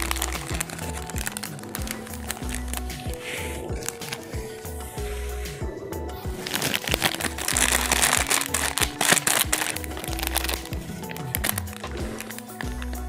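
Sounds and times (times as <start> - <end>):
plastic wrappers crinkling: 0.0 - 5.2, 6.3 - 13.0
background music with bass beat: 0.0 - 13.0.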